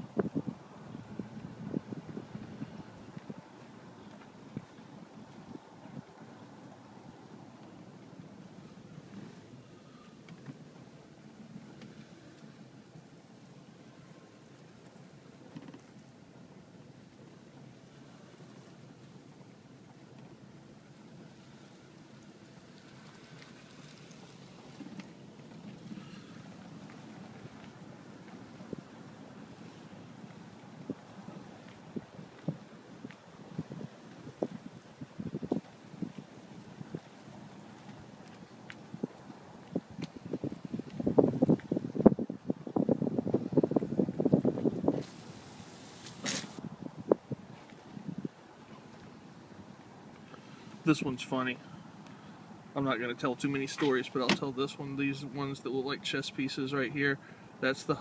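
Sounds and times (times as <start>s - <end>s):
light ticks and crackles: 22.0s - 28.6s, 35.5s - 40.2s
car tyres crunching over snow: 43.4s - 46.6s
short hissing rush: 44.9s - 46.6s.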